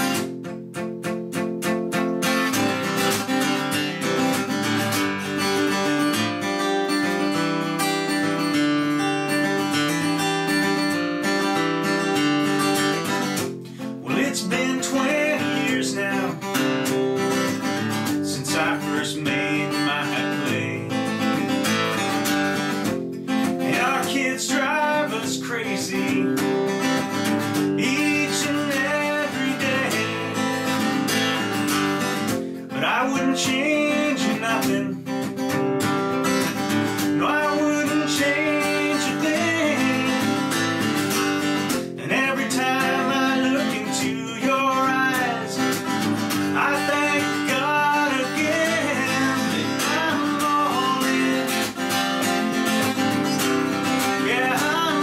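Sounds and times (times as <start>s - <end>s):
acoustic guitar strumming: 0.0s - 55.0s
man singing: 13.7s - 22.0s, 23.4s - 35.6s, 36.6s - 55.0s.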